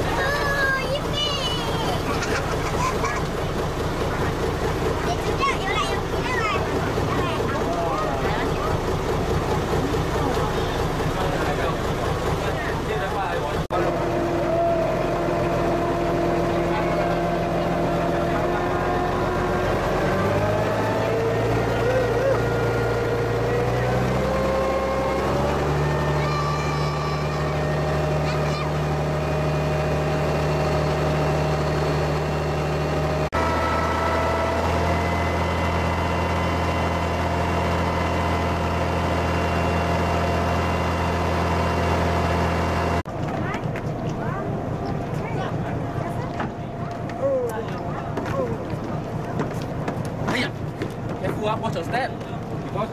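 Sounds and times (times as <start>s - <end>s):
boat engine drone: 0.0s - 52.9s.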